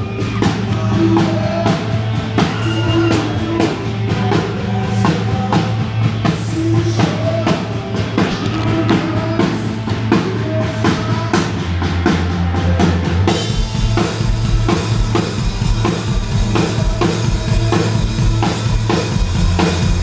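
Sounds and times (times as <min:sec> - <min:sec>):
bass and snare drum beat: 0:00.0 - 0:20.0
live rock band playing loudly: 0:00.0 - 0:20.0.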